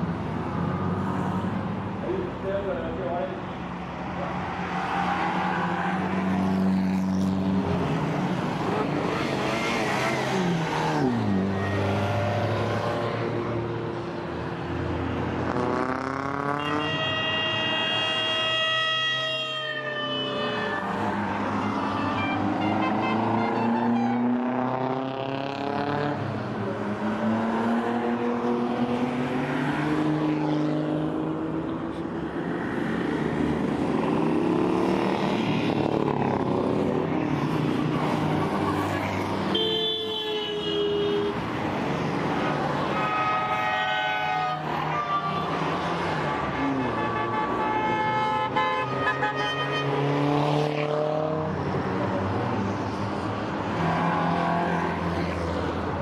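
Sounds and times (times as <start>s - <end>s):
car engines revving and passing: 0.0s - 56.0s.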